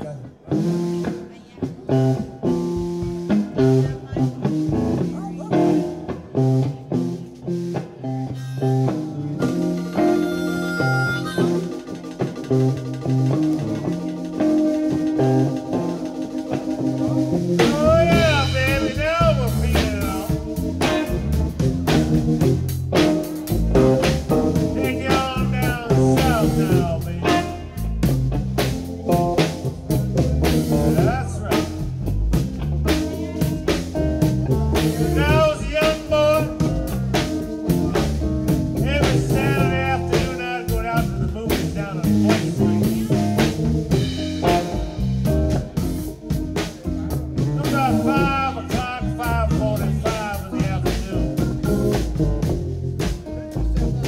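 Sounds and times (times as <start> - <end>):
drum kit: 0.0 - 54.0
electric bass: 0.0 - 54.0
electric guitar: 0.0 - 54.0
man singing: 17.6 - 21.4, 24.0 - 28.1, 30.4 - 32.1, 34.8 - 38.1, 38.7 - 43.6, 46.9 - 52.2.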